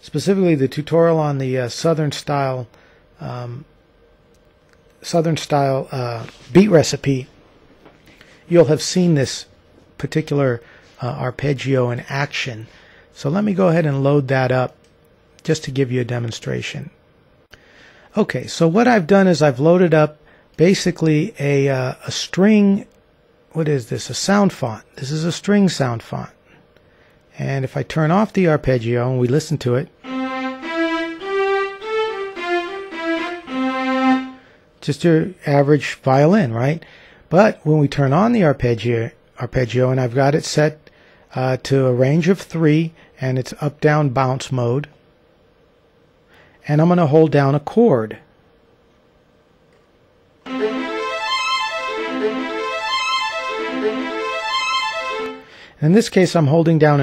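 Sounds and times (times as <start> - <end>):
violin sustained notes: 30.0 - 34.5, 50.5 - 55.6.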